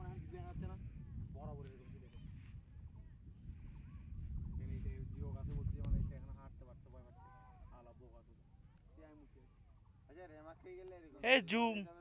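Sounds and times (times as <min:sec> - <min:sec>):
wind buffeting microphone: 0:00.0 - 0:07.3.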